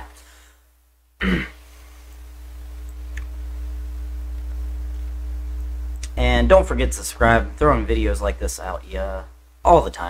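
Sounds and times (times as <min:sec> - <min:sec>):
steady low hum: 0:00.0 - 0:10.0
man clearing throat: 0:01.2 - 0:01.6.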